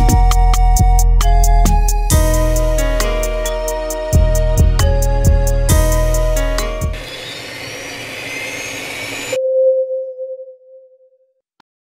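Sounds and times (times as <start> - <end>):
held tone: 0.0 - 11.3.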